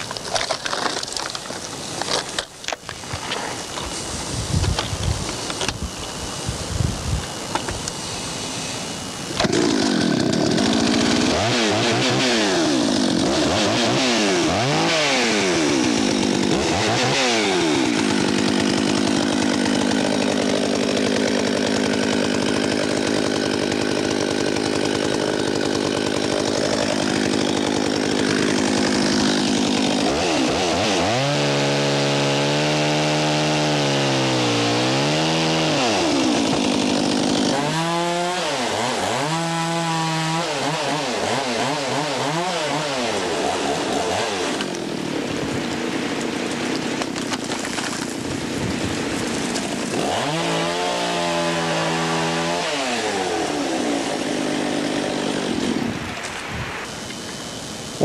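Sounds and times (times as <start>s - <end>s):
chainsaw revving and cutting: 9.0s - 56.3s.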